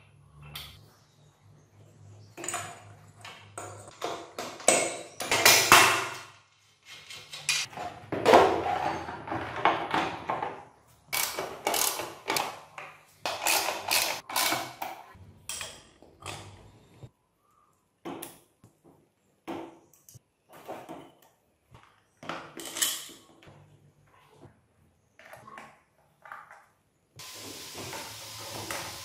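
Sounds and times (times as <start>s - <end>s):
metal parts and tools clanking: 6.8s - 10.5s, 13.3s - 14.9s, 22.2s - 23.4s.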